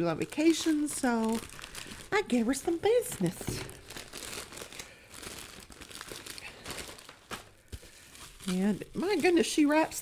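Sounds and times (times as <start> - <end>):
plastic packaging crinkling and tearing: 0.0 - 10.0.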